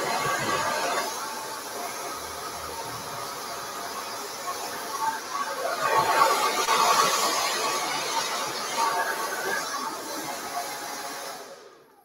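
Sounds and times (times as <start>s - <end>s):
hair dryer blowing: 0.0s - 11.8s.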